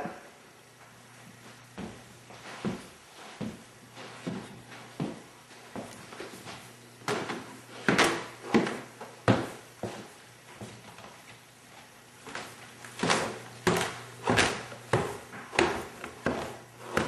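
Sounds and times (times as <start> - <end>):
footsteps on a floor: 0.7 - 17.0.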